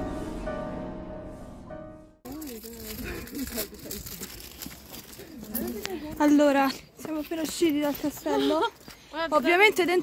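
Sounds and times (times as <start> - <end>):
background music: 0.0 - 2.2.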